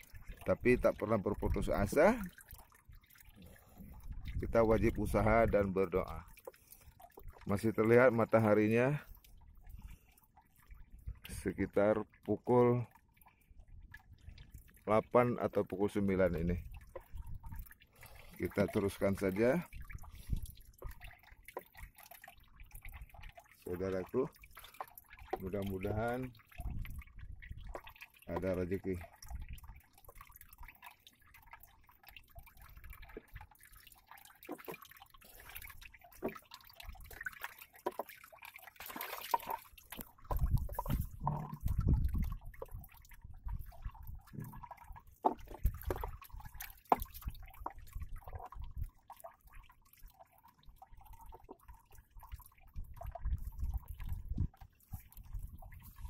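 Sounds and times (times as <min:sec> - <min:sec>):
water drips: 0:00.0 - 0:56.0
waves lapping against boat hull: 0:00.0 - 0:56.0.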